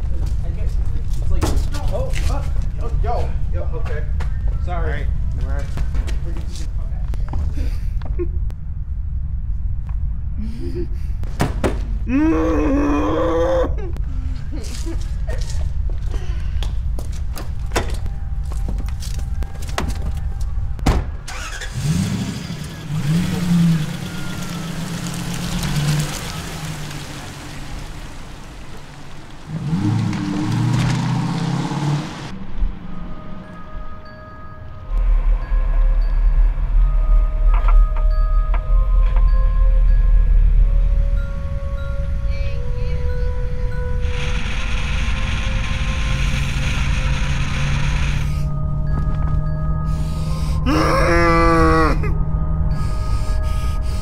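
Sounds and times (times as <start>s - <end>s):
car engine starting and revving: 21.1s - 33.5s, 43.9s - 50.7s
low steady drone: 32.3s - 54.0s.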